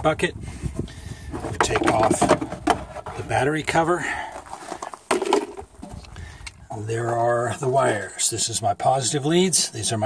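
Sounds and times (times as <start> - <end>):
handling noises: 1.3 - 7.3.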